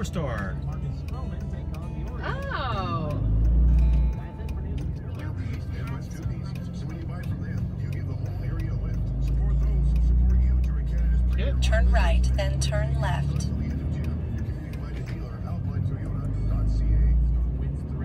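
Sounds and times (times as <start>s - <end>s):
vehicle engine and road rumble: 0.0s - 18.0s.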